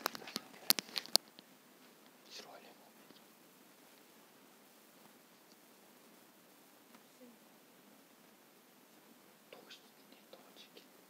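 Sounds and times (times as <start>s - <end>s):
faint breathy whispering: 2.2s - 3.3s, 9.5s - 11.0s.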